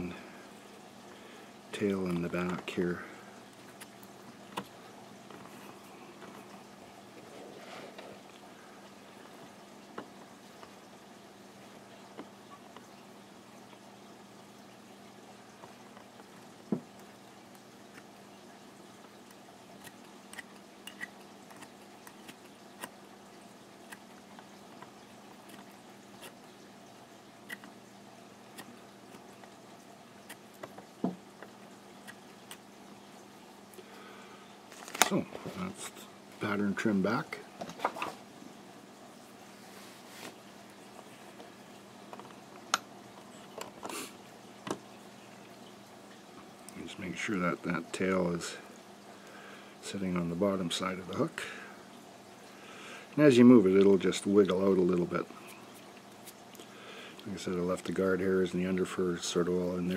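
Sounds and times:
low steady hum: 0.0s - 59.9s.

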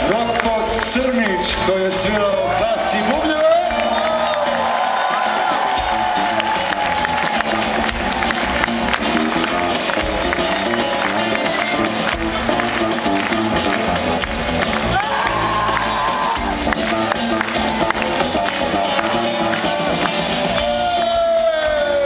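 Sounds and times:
crowd cheering and applause: 0.0s - 22.0s
live band playing: 0.0s - 22.0s.

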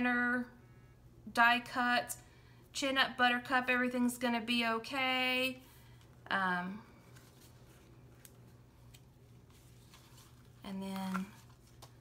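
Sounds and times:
faint room hum: 0.0s - 12.0s
paper pages flipping: 7.0s - 12.0s.

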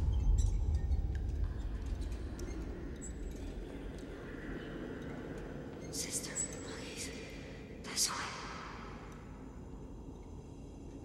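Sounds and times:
low steady rumble: 0.0s - 3.5s.

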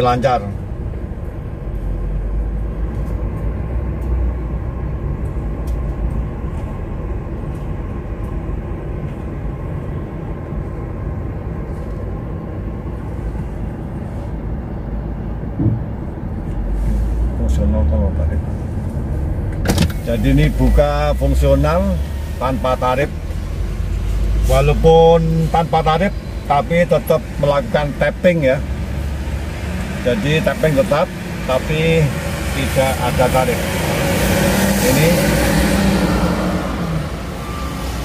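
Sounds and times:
car engine and road rumble: 0.0s - 38.0s
short knock: 15.6s - 15.9s.

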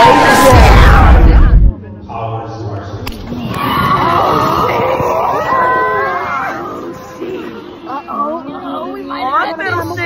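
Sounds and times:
girls shrieking: 3.5s - 7.5s.

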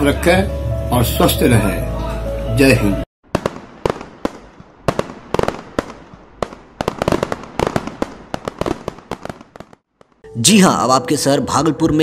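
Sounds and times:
fireworks bangs and crackling: 3.2s - 10.2s.

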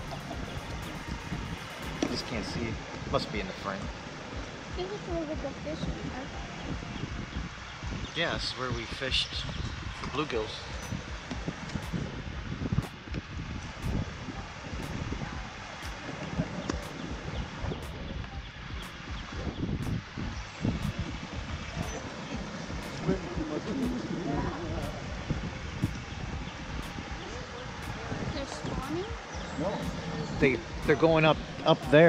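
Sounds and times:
wind buffeting microphone: 0.0s - 32.0s
water rushing over spillway: 18.8s - 32.0s.

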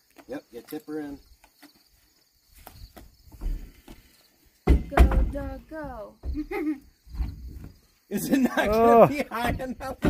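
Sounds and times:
wheel knocking and scuffing: 1.4s - 4.1s
dull low thump: 4.6s - 7.8s.

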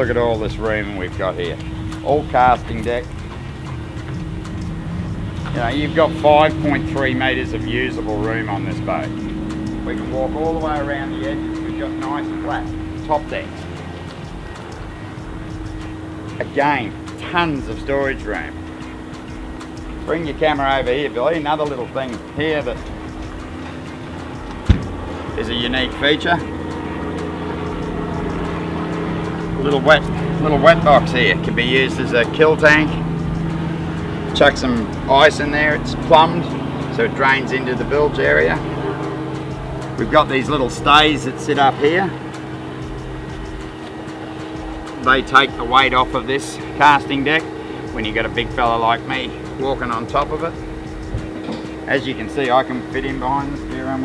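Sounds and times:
low background rumble: 0.0s - 54.0s
low mechanical hum: 0.0s - 54.0s.

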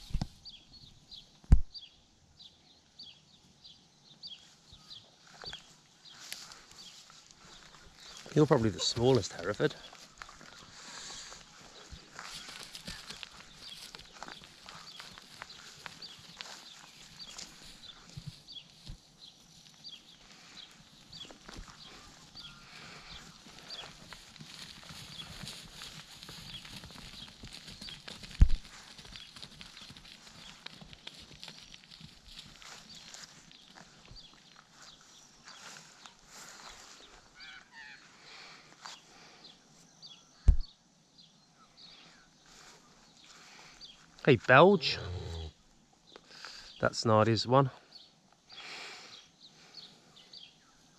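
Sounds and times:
rustling and crunching in grass: 4.4s - 37.7s, 42.4s - 44.2s.

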